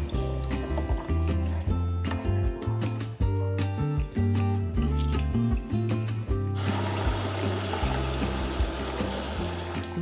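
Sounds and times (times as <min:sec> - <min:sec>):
background music: 0:00.0 - 0:10.0
tap water running into pot: 0:06.6 - 0:10.0.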